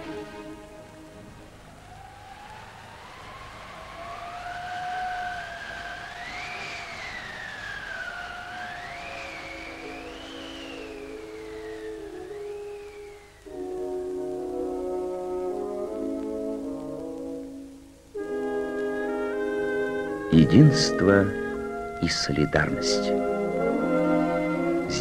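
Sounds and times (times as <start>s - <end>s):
high gliding siren-like tone: 0.0s - 14.8s, 18.2s - 25.0s
low sustained chord: 0.0s - 25.0s.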